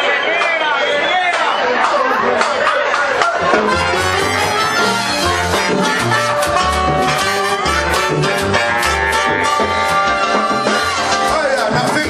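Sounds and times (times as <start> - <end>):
salsa band playing: 0.0 - 12.0
trumpets and trombones: 3.4 - 12.0.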